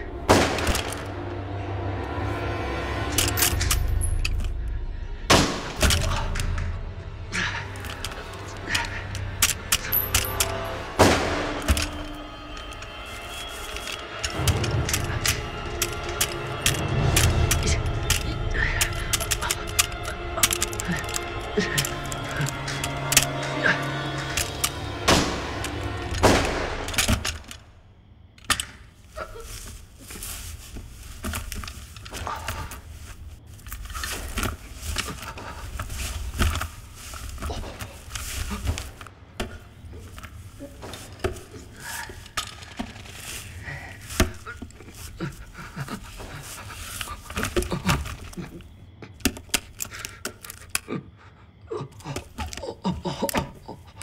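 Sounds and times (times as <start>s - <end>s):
music with sustained tones: 0.0s - 48.6s
sharp cracks and knocks: 0.3s - 1.2s, 5.3s - 6.7s, 8.8s - 12.8s, 13.6s - 27.7s
scattered knocks and clicks: 13.7s - 27.7s, 44.1s - 50.9s.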